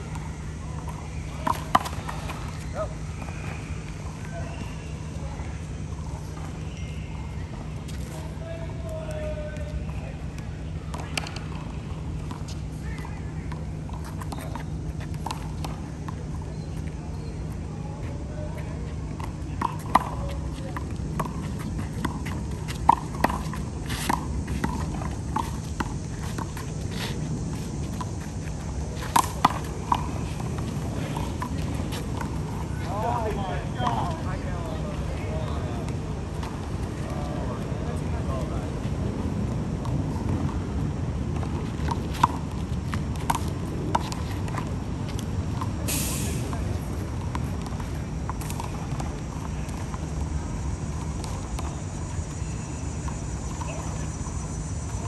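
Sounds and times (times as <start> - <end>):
steady low hum: 0.0 - 55.0
short hiss: 45.9 - 46.4.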